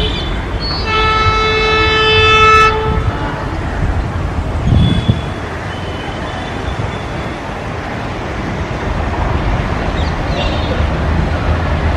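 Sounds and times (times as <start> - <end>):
diesel locomotive horn blast: 0.0 - 3.6
low rumble of train: 0.0 - 11.9.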